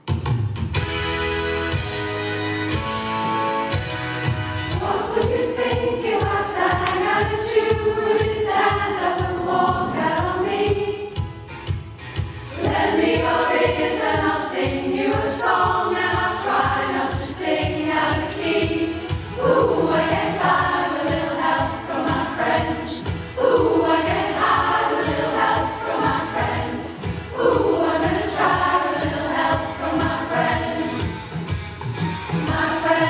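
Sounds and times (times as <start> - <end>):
choir singing a pop song: 4.6 - 11.5, 12.5 - 33.0.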